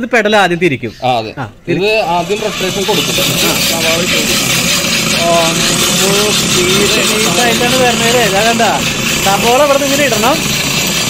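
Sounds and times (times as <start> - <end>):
person talking: 5.1 - 10.5.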